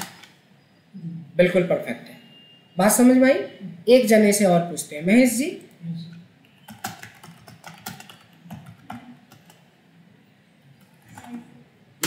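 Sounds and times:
computer keyboard typing: 0.0s - 0.4s, 6.6s - 9.7s, 10.8s - 11.5s.

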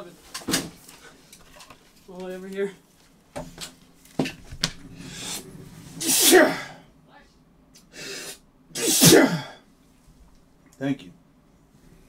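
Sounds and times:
man sneezing: 6.0s - 6.8s, 8.0s - 9.6s.

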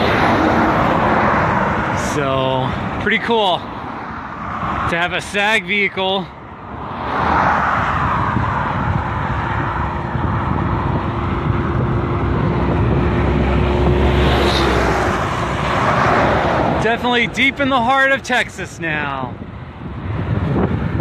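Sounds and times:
motor traffic: 0.0s - 21.0s
passing vehicle rumble: 0.0s - 21.0s
wind on microphone: 6.7s - 16.8s, 18.9s - 21.0s.

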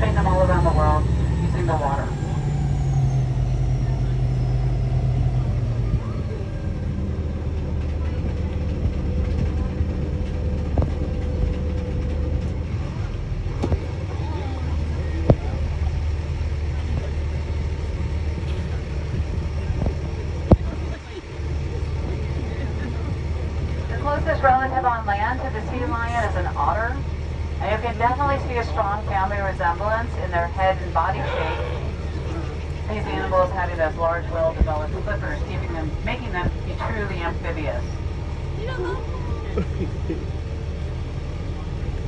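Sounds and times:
boat engine rumbling: 0.0s - 42.0s.

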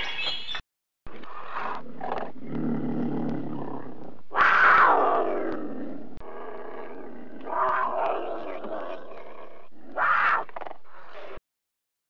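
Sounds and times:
big cat growling and snarling: 1.2s - 11.4s.

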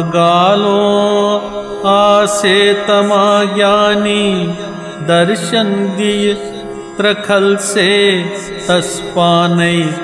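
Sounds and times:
man singing chant-like melody: 0.0s - 10.0s.

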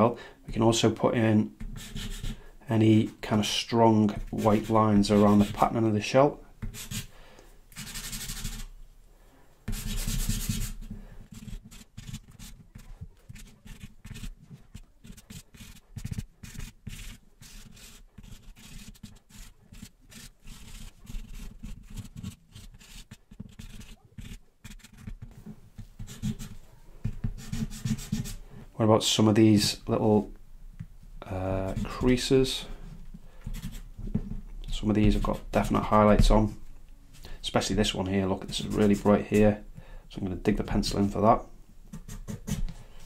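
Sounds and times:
pencil scraping on paper: 1.6s - 2.5s, 4.1s - 5.7s, 6.6s - 7.1s, 7.8s - 8.7s, 9.7s - 28.4s, 31.5s - 36.4s, 37.2s - 39.6s, 41.9s - 42.8s.

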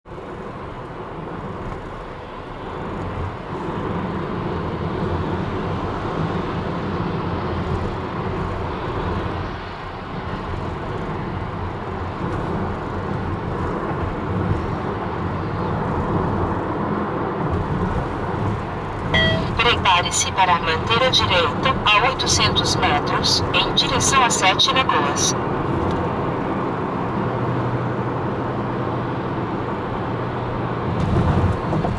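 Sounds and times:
car road and engine noise: 0.0s - 31.9s.

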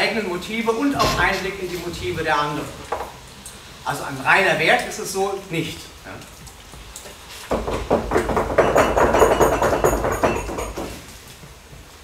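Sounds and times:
knuckles rapping on wooden tables: 7.5s - 11.1s.

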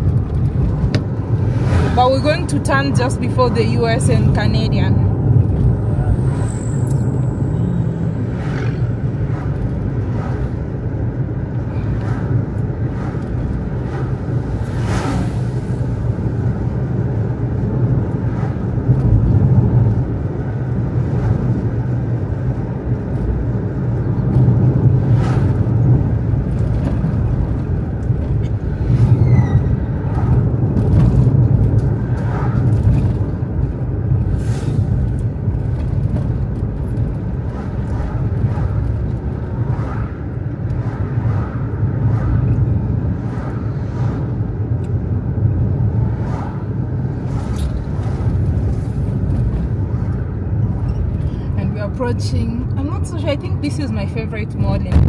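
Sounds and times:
road and engine rumble in car: 0.0s - 55.0s.

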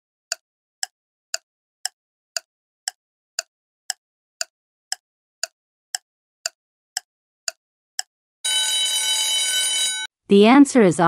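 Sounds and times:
countdown timer tick: 0.3s - 8.9s
ringing alarm tone: 8.4s - 10.1s.

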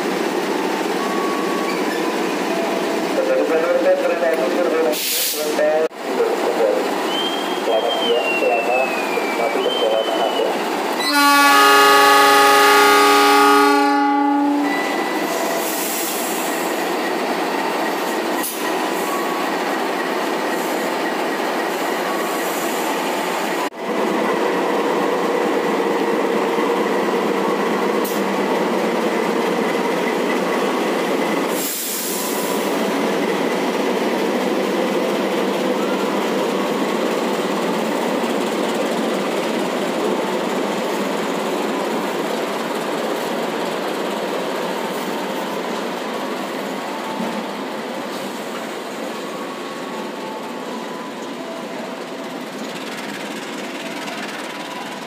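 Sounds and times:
locomotive horn blast: 11.0s - 14.9s.

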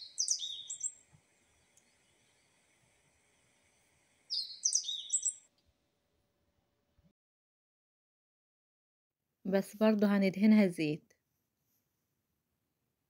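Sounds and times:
bird chirping: 0.0s - 2.6s, 4.3s - 5.6s
faint high hiss: 0.0s - 5.6s.

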